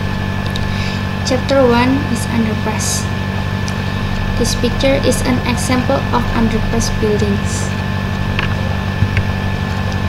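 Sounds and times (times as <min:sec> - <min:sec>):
steady low hum: 0:00.0 - 0:10.0
thin high whine: 0:00.0 - 0:10.0.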